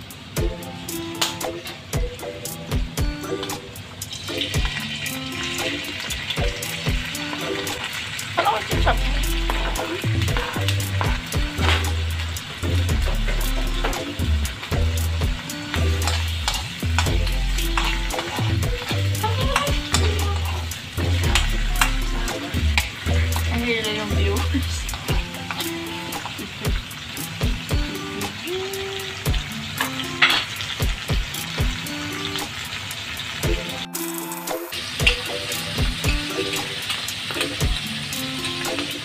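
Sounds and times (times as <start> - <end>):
butter and mushrooms sizzling in wok: 0.0 - 39.0
background music with bass line: 0.4 - 7.9, 8.7 - 28.5, 29.2 - 32.4, 33.4 - 36.8, 37.4 - 39.0.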